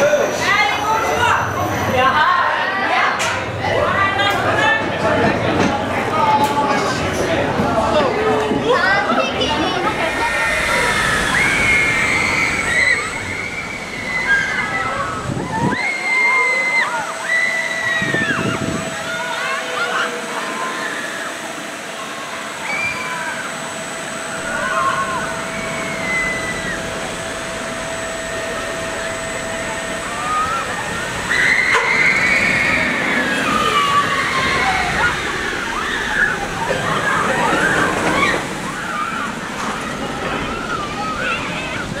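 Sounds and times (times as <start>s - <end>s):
roller coaster train rushing: 0.0s - 42.0s
high whine-like tones: 6.8s - 41.6s.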